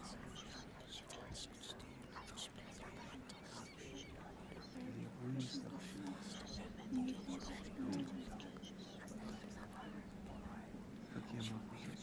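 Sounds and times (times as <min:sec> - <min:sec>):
faint whispering voices: 0:00.0 - 0:12.0.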